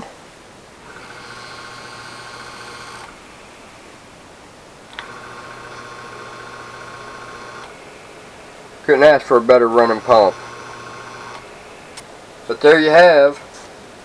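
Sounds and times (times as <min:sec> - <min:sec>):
sump pump motor humming and whining: 0:00.8 - 0:03.4, 0:04.9 - 0:12.0.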